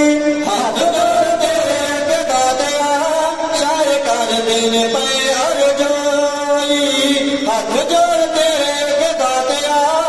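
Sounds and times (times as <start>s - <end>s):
men chanting unaccompanied: 0.3s - 10.0s.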